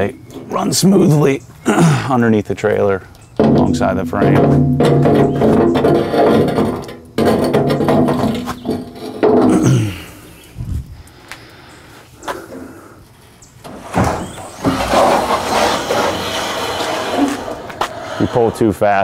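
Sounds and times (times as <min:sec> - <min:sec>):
metal ramp scraping and clattering: 0:03.4 - 0:09.8, 0:13.6 - 0:19.0
ramp sliding rush: 0:13.8 - 0:19.0.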